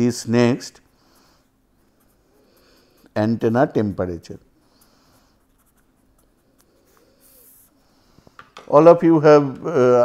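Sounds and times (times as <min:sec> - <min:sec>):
marker pen scratching on paper: 0:00.7 - 0:07.9.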